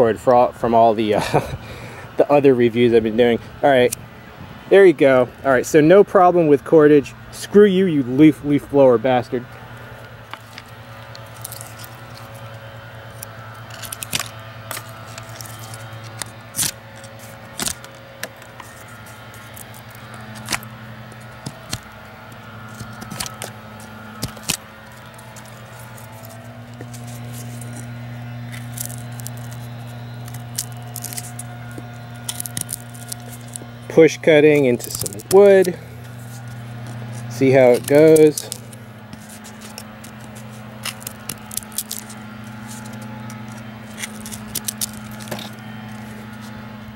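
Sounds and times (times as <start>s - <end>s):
leaf blower droning: 0.0s - 46.9s.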